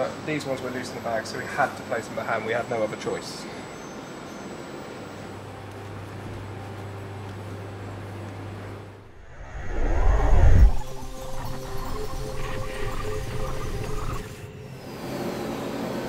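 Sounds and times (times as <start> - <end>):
whoosh transition effect: 9.1 - 14.3.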